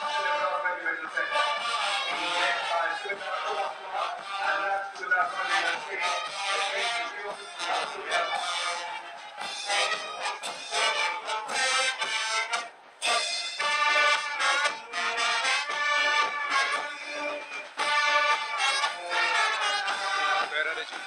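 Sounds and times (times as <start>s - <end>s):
brass band playing a march: 0.0s - 21.0s.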